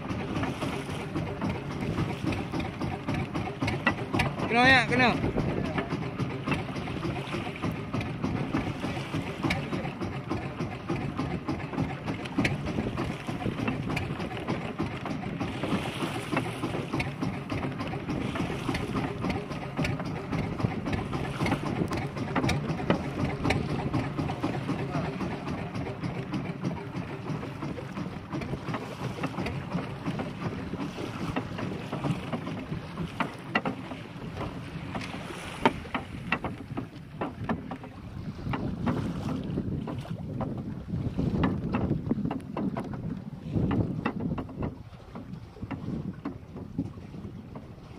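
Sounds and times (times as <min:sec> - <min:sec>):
boat low drone: 0:00.0 - 0:47.9
water splashing against hull: 0:00.0 - 0:47.9
wind buffeting microphone: 0:00.0 - 0:47.9.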